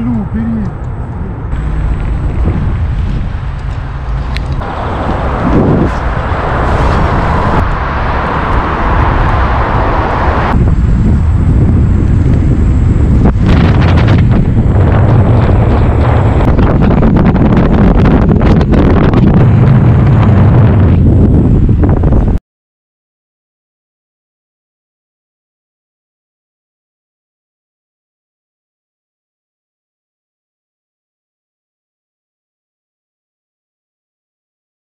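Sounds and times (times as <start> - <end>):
road noise: 0.0 - 22.4
wind rushing over microphone: 0.0 - 22.4.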